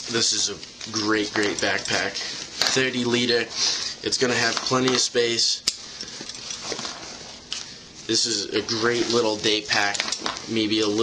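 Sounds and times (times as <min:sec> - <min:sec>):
backpack straps rustling: 0:00.1 - 0:05.2, 0:05.8 - 0:11.0.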